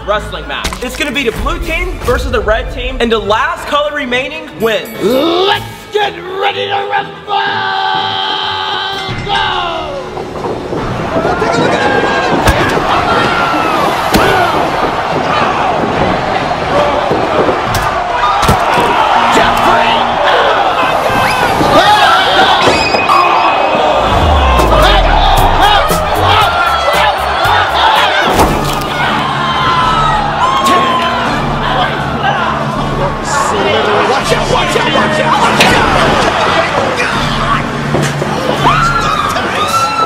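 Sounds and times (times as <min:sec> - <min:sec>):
background music: 0:00.0 - 0:40.0
young men shouting and laughing: 0:11.1 - 0:37.8.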